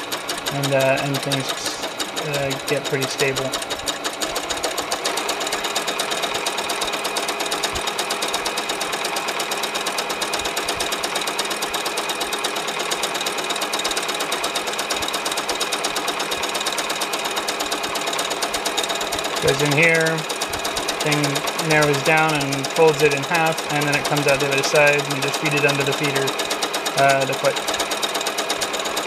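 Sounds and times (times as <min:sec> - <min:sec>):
sewing machine stitching: 0:00.0 - 0:29.0.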